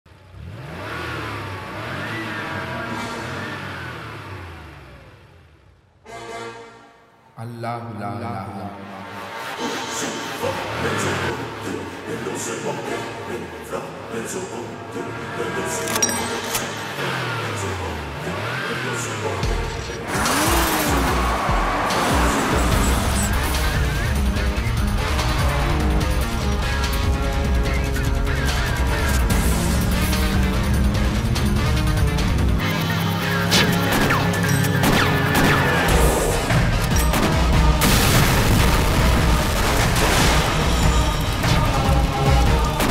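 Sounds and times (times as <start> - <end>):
vehicle engine revving: 0.1 - 5.7, 16.7 - 42.9
action film music: 19.3 - 42.9.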